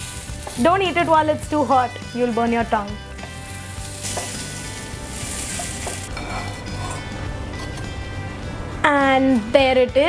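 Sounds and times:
fish sizzling in hot oil: 0:00.0 - 0:01.9, 0:02.9 - 0:06.4
spatula tapping pan: 0:03.2 - 0:03.4, 0:05.4 - 0:06.4.

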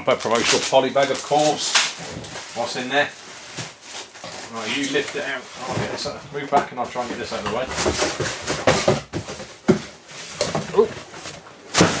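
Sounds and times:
cardboard boxes scraping: 0:00.2 - 0:12.0.

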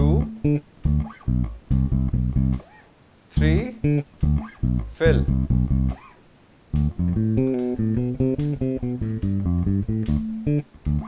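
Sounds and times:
electric bass plucked notes: 0:00.0 - 0:02.7, 0:03.3 - 0:06.0, 0:06.7 - 0:11.0.

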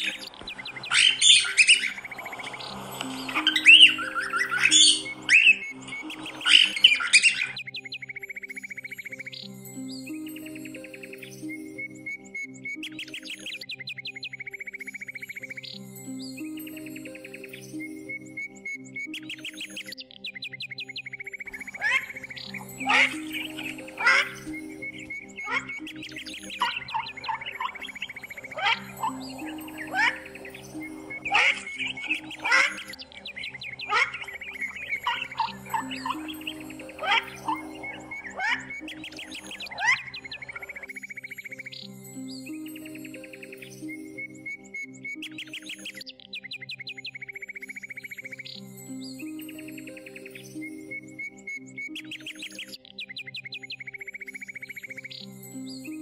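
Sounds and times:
bird trilling: 0:00.0 - 0:09.4, 0:20.6 - 0:41.8
soft background music: 0:00.0 - 0:56.0.

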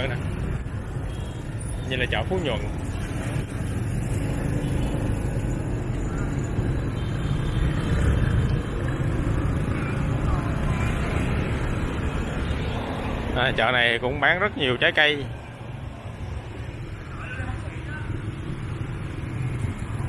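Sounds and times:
motorbike and car traffic: 0:00.0 - 0:20.0.

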